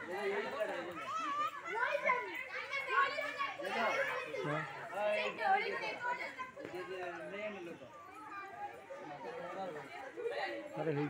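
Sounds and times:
chatter of voices: 0.0 - 11.0.

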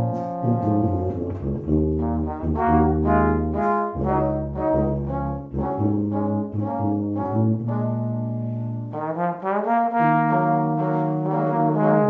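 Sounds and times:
brass ensemble playing chords: 0.0 - 12.0.

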